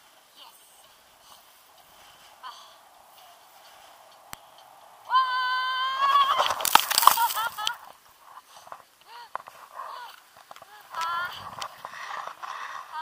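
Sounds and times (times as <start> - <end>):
paraglider landing in snow: 6.1 - 7.8.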